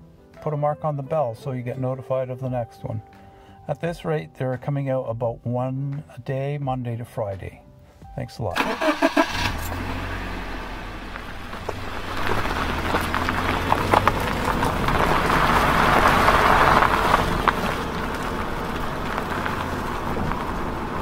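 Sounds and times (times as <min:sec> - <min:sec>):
car engine humming: 0:08.6 - 0:21.0
road noise: 0:08.6 - 0:21.0.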